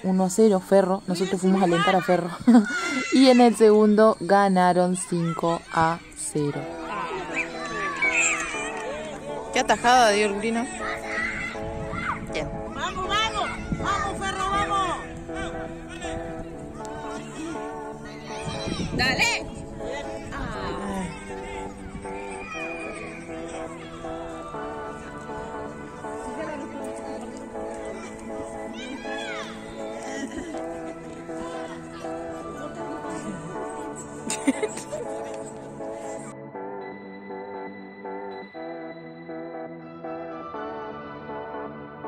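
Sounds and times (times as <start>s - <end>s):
background music melody: 0.0s - 42.0s
spectators and children shouting: 6.8s - 9.2s, 10.8s - 12.3s, 20.2s - 25.4s, 27.8s - 29.9s.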